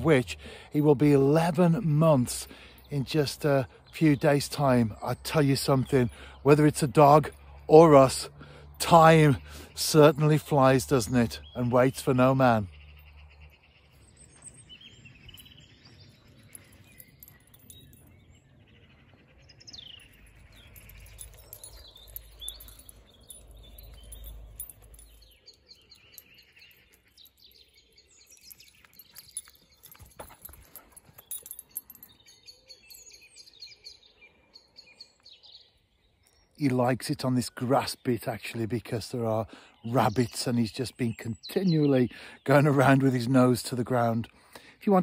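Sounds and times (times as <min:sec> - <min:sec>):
small birds chirping: 0:00.0 - 0:45.0.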